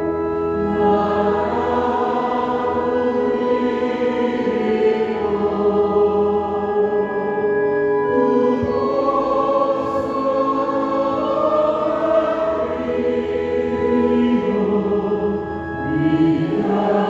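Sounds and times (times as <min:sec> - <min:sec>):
organ playing a hymn: 0:00.0 - 0:17.0.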